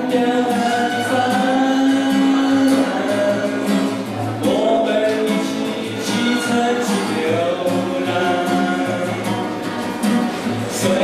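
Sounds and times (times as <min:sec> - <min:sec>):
man singing into microphone: 0:00.0 - 0:09.7, 0:10.6 - 0:11.0
acoustic guitar strumming: 0:00.0 - 0:11.0.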